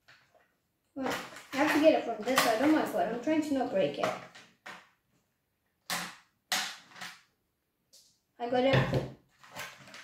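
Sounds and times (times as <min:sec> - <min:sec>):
scissors snipping plastic: 0:01.0 - 0:03.0.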